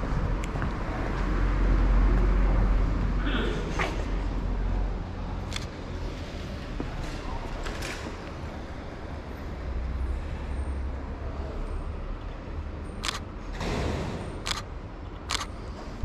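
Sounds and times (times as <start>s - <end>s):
camera shutter clicks: 13.0s - 13.2s, 14.4s - 15.5s.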